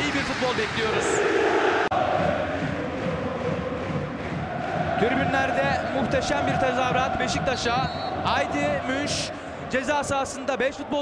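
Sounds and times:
stadium crowd chanting: 1.2 - 9.7.

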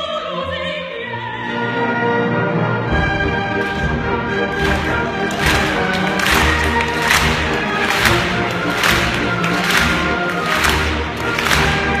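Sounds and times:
symphony orchestra playing: 0.0 - 12.0.

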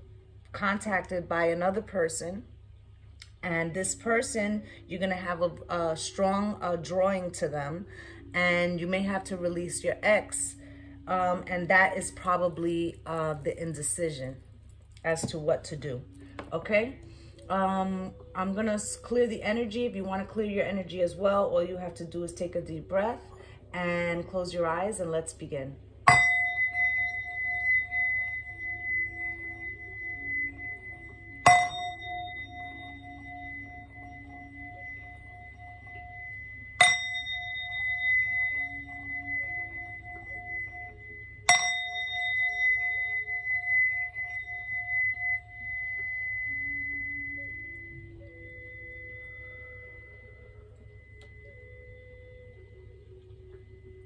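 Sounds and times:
singing bowl ringing: 3.4 - 54.0.

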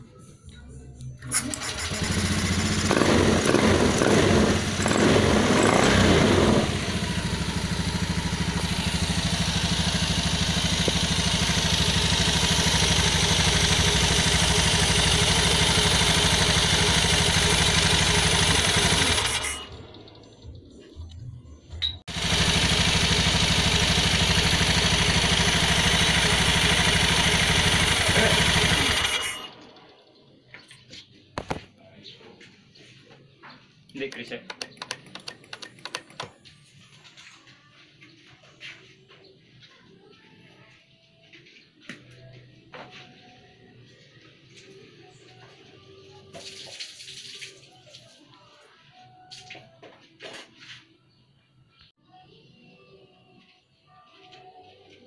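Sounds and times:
scooter engine starting and idling: 1.2 - 21.2, 21.9 - 30.0, 34.1 - 36.5.

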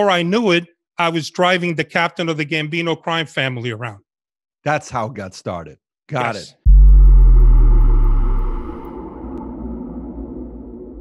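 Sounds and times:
deep cinematic boom: 6.7 - 11.0.

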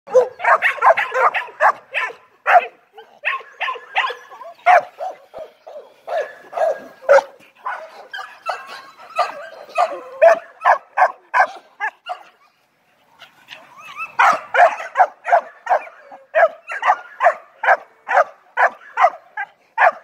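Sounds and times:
young dog barking: 0.1 - 12.4, 13.9 - 20.0.

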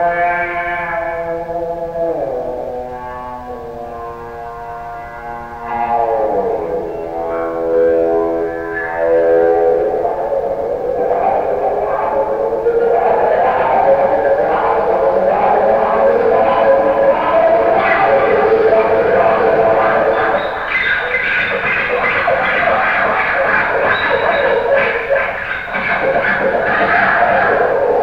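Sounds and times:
bowed electric guitar with echo: 0.0 - 28.0.

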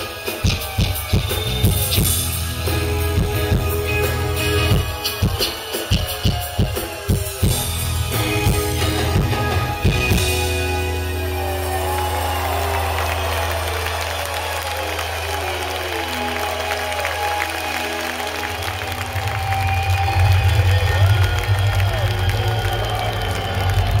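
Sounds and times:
crowd cheering and applauding: 0.0 - 24.0
rock band holding low chord: 0.0 - 24.0.

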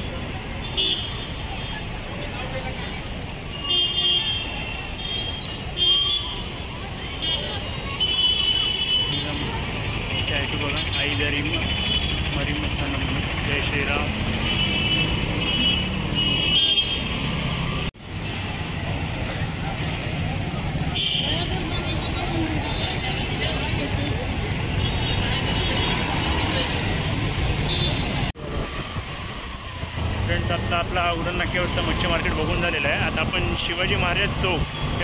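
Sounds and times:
motor vehicles running: 6.4 - 35.0.

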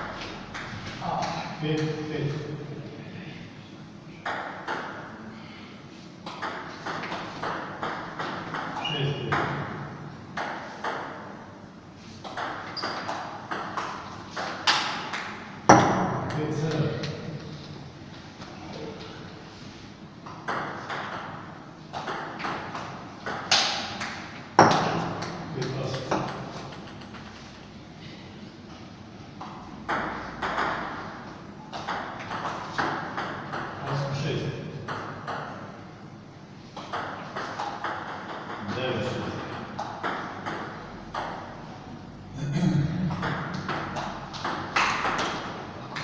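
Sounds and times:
table tennis ball bouncing: 0.0 - 0.8, 4.2 - 5.1, 6.2 - 11.3, 12.2 - 17.6, 20.2 - 27.7, 29.4 - 34.0, 34.8 - 35.7, 36.8 - 38.7, 39.3 - 41.6, 43.0 - 46.0.

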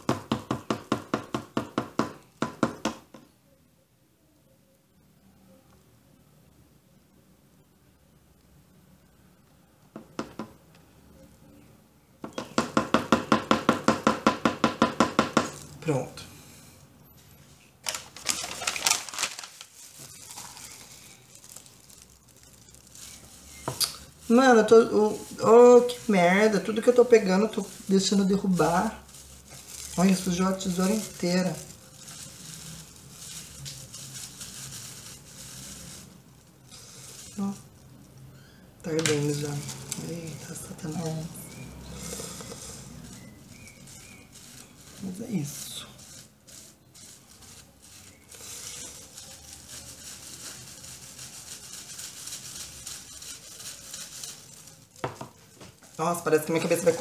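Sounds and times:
gloved hand rubbing wet hair: 15.5 - 38.2, 38.9 - 57.0.

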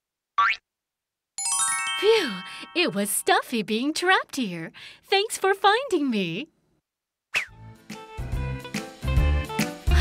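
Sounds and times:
cartoon boing: 0.4 - 0.6.

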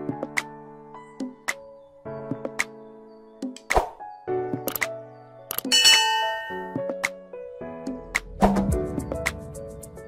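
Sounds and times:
background music: 0.0 - 10.0
click: 5.5 - 5.7
bright bell ding: 5.7 - 6.8.

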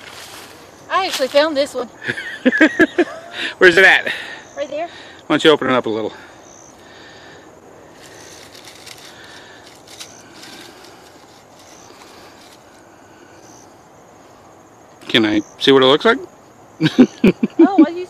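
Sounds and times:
dry leaves rustling: 0.0 - 1.9, 7.8 - 13.5.

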